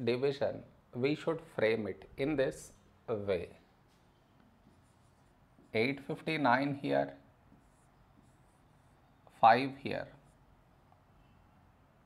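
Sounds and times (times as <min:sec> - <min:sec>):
person speaking: 0:00.0 - 0:03.9, 0:04.6 - 0:10.5
pen scratching on whiteboard: 0:04.5 - 0:05.9, 0:07.4 - 0:09.2.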